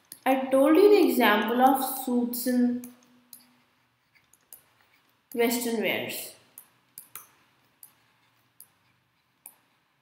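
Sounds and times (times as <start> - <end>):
stylus tapping drawing tablet: 6.5 - 10.0.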